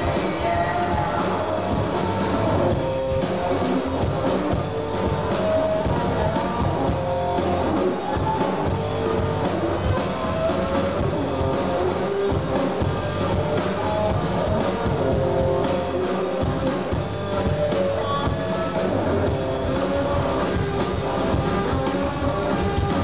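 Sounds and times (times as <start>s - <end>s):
bass guitar: 0.0s - 23.0s
drum kit: 0.0s - 23.0s
electric guitar: 0.0s - 23.0s.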